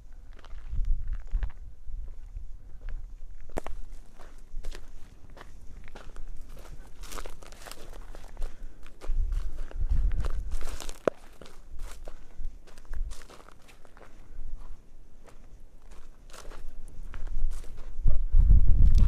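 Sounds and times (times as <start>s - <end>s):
footsteps on grass and stones: 0.2s - 19.0s.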